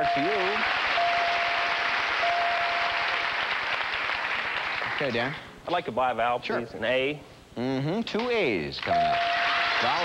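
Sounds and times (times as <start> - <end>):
chime tone: 0.0 - 3.0
audience applauding: 0.0 - 5.3, 8.8 - 10.0.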